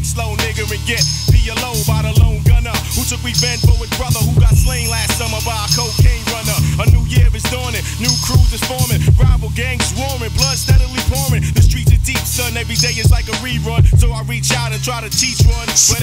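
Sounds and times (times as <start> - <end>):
rapping over a beat: 0.0 - 16.0.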